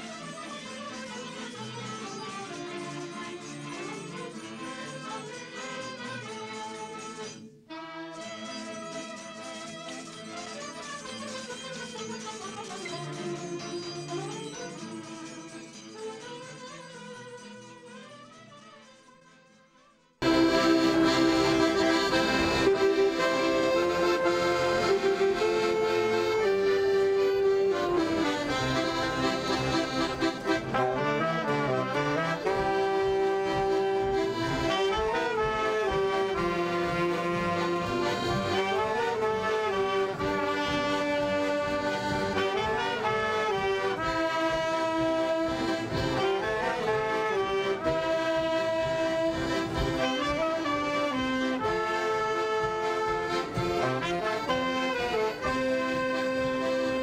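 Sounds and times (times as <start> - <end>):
accordion playing: 0.0 - 19.3, 20.2 - 57.0.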